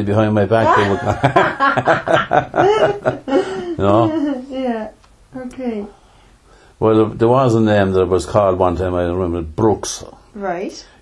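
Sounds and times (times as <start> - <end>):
people chuckling: 0.7 - 4.1.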